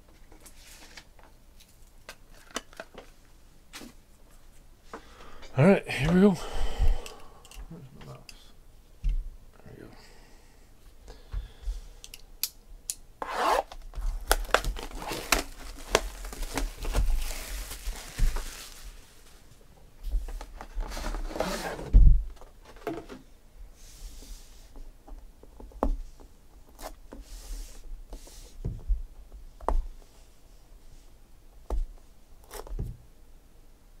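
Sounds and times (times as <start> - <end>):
plastic shrink wrap tearing: 14.0 - 19.1.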